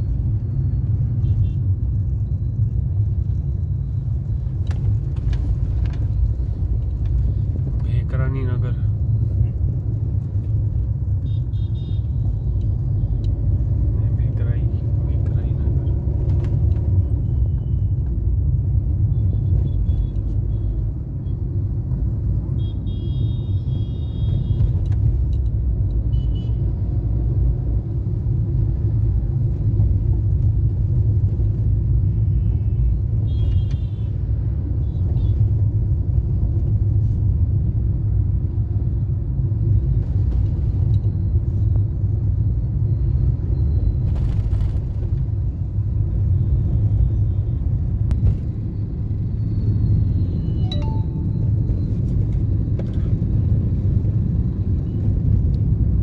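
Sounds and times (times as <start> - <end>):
car engine and tyre rumble: 0.0 - 56.0
high-pitched beeps: 50.4 - 51.6.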